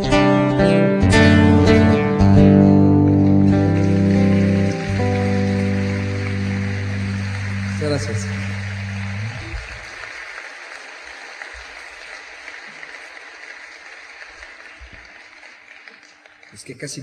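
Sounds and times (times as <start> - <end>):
audience applause: 2.3 - 17.0
band sustained chord: 3.3 - 9.9.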